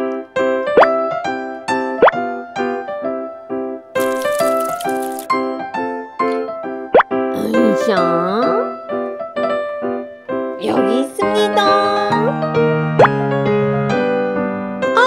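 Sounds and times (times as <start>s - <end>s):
cheerful children's music: 6.2s - 13.4s.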